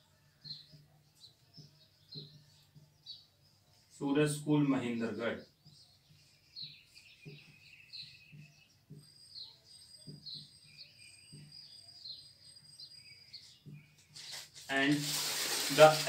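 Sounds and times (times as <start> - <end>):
faint bird chirping: 0.0 - 14.7.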